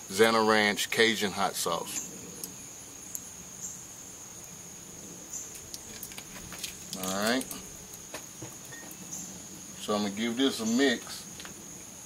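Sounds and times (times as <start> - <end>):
crickets trilling: 0.0 - 12.0
faint ticks: 2.4 - 3.3.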